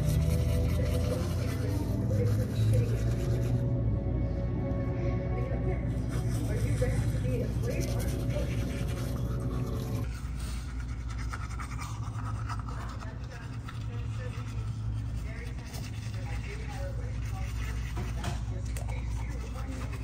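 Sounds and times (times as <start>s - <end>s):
toothbrush scrubbing teeth: 0.0s - 3.7s, 5.8s - 20.0s
faint voices talking: 0.0s - 10.1s, 12.4s - 20.0s.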